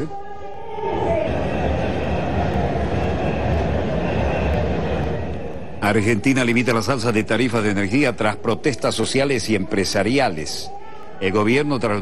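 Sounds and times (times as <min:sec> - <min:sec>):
crowd and street noise: 0:00.0 - 0:12.0.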